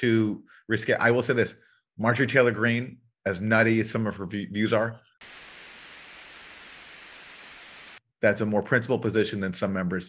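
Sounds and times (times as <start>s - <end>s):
white-noise static: 5.2s - 8.0s.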